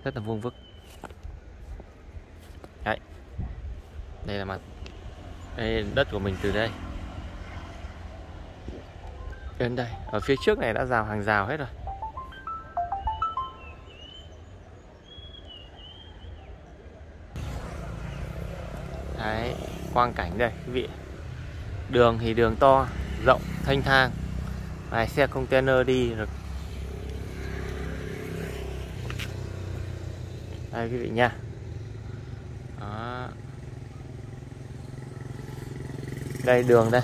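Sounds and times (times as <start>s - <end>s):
electronic melody: 9.0s - 14.3s
high gliding notes: 9.2s - 14.2s.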